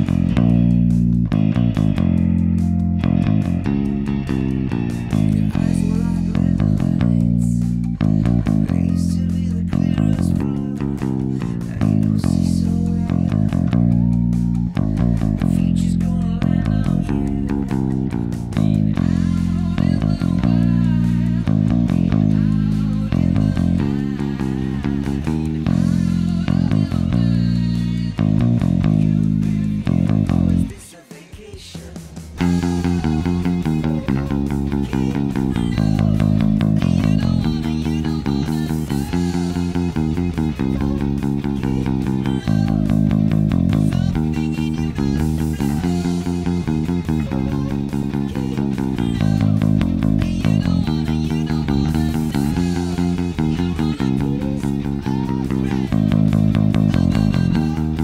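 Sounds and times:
electric bass: 0:00.0 - 0:30.8, 0:32.2 - 0:58.0
sung rock recording: 0:00.0 - 0:58.0.

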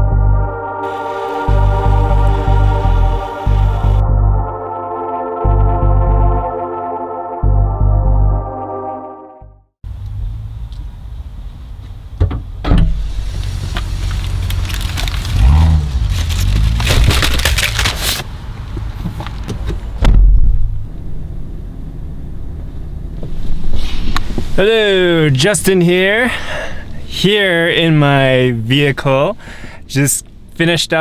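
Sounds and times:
low outdoor rumble: 0:09.9 - 0:31.0
plastic packs and bags rustling: 0:13.5 - 0:18.3
loud low thump: 0:20.0 - 0:20.8.

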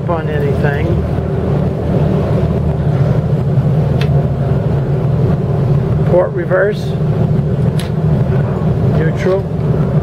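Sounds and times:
boat engines idling: 0:00.0 - 0:10.0.

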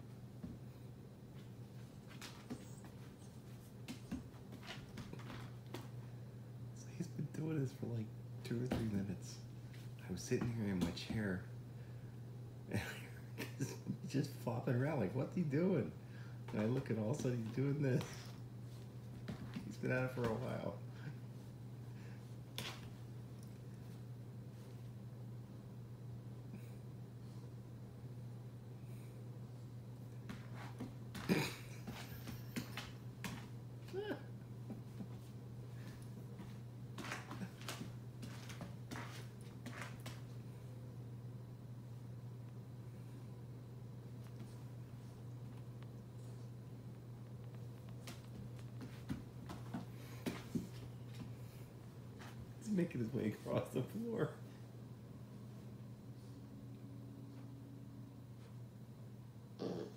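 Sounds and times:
puppy scuffling on wooden floor: 0:01.3 - 0:06.2, 0:16.5 - 0:20.7, 0:34.6 - 0:40.5, 0:44.1 - 0:52.6.

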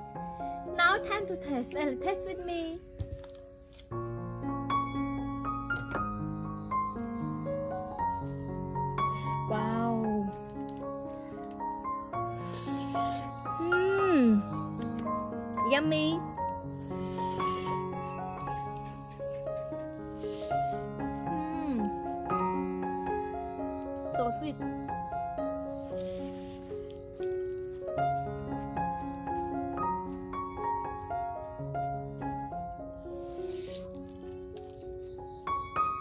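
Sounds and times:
crickets chirring: 0:00.0 - 0:36.0
gentle background music: 0:00.0 - 0:36.0.

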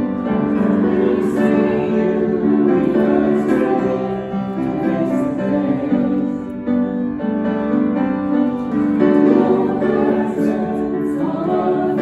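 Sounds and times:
group of singers singing: 0:00.0 - 0:06.9, 0:08.7 - 0:12.0
grand piano accompaniment: 0:00.0 - 0:12.0.

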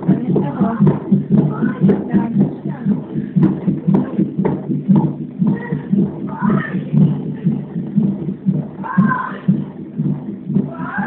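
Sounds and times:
whooshing fetal heartbeat: 0:00.0 - 0:11.0.

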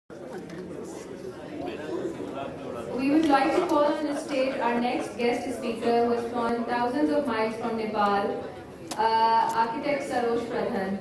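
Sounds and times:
audience chatter: 0:00.1 - 0:11.0.

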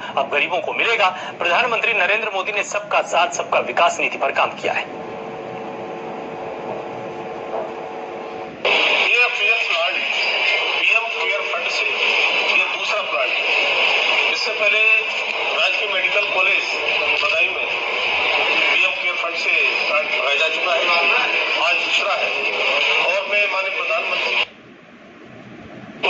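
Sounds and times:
man speaking through tinny speaker: 0:00.0 - 0:05.0, 0:09.0 - 0:13.4, 0:14.2 - 0:24.5
steady hum: 0:00.0 - 0:26.0.

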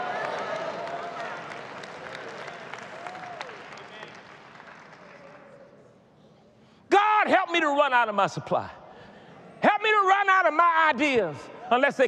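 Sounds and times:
congregation applauding: 0:00.0 - 0:05.6.

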